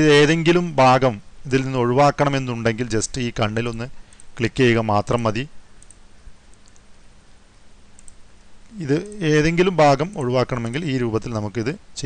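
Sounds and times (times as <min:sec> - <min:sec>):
faint computer mouse clicks: 0:04.1 - 0:04.4, 0:05.8 - 0:06.9, 0:07.9 - 0:08.2
person narrating: 0:08.7 - 0:11.8.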